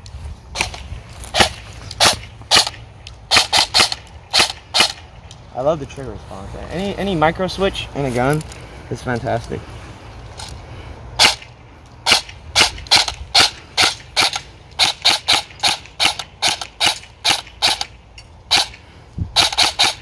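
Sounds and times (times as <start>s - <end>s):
airsoft gun single shots: 0.6s - 5.0s, 11.2s - 17.9s, 18.5s - 18.8s, 19.4s - 20.0s.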